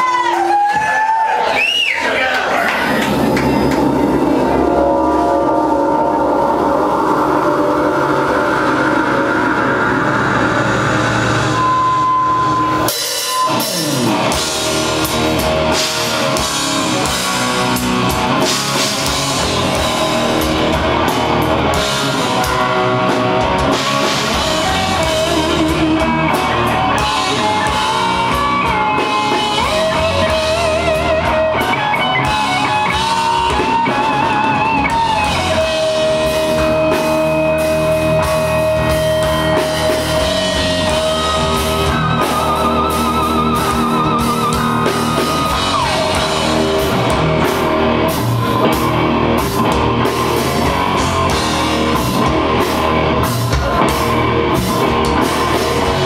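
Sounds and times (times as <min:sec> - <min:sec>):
drum kit: 0:00.0 - 0:56.0
rock band playing: 0:00.0 - 0:56.0
sustained electric guitar: 0:02.3 - 0:56.0
lead guitar with wide vibrato: 0:02.7 - 0:56.0.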